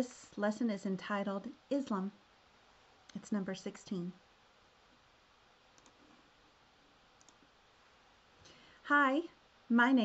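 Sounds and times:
computer mouse clicks: 0:05.7 - 0:06.2, 0:07.2 - 0:07.5.

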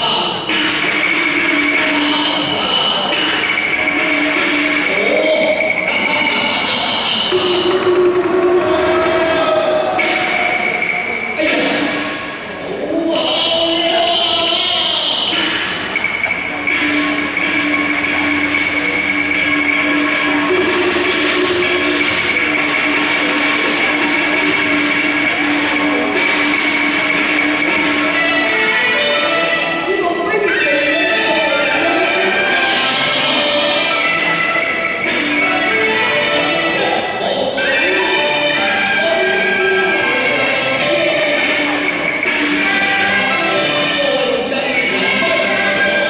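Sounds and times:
long held high notes: 0:00.0 - 0:46.0
opera stage ensemble playing: 0:00.0 - 0:46.0
gongs and cymbals clanging: 0:00.3 - 0:12.6, 0:15.2 - 0:46.0
gongs and cymbals clashing: 0:00.4 - 0:06.5, 0:15.3 - 0:29.5.

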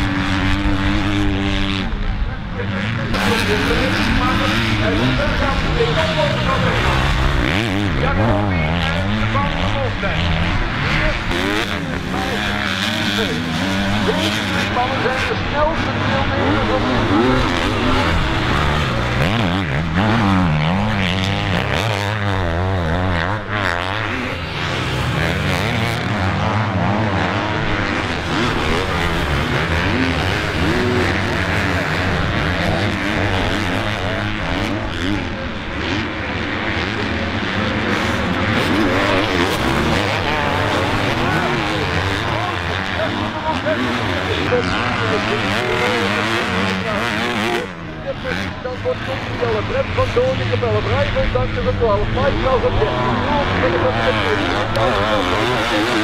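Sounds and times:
motocross bikes revving: 0:00.0 - 0:56.0.

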